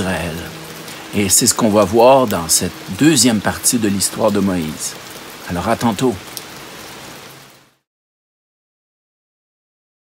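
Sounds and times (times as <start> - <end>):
man speaking: 0.0 - 6.2
outdoor background hiss: 0.0 - 7.9.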